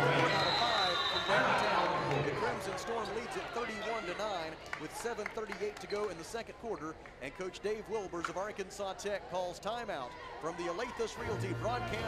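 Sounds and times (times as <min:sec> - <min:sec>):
referee's whistle: 0:00.0 - 0:01.4.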